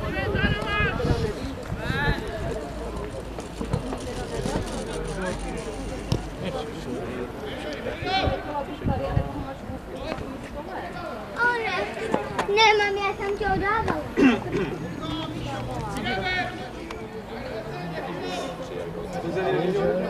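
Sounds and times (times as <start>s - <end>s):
wind rumbling on microphone: 0.0s - 2.7s, 8.1s - 9.9s.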